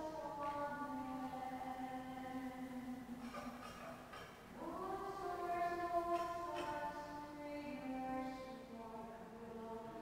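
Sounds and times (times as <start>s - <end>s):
slow church music: 0.0s - 10.0s.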